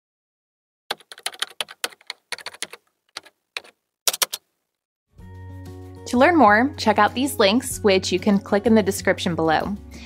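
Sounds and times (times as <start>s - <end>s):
computer keyboard typing: 0.9s - 4.4s.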